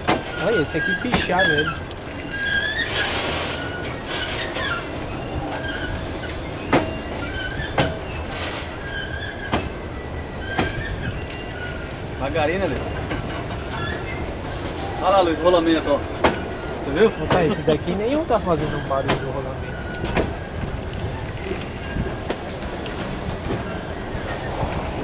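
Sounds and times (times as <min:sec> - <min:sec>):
train wheels rumbling on rail: 0:00.0 - 0:25.0
wheels squealing: 0:00.0 - 0:25.0.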